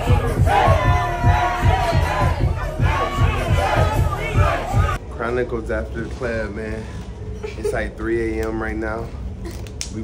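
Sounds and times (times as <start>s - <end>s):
crowd shouting and chanting: 0.0s - 5.0s
dance music with heavy bass beat: 0.0s - 5.0s.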